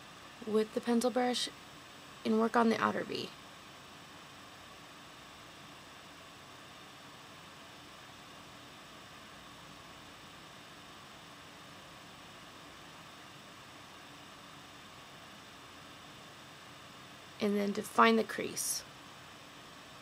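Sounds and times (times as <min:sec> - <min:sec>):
steady hiss with faint hum: 0:00.0 - 0:20.0.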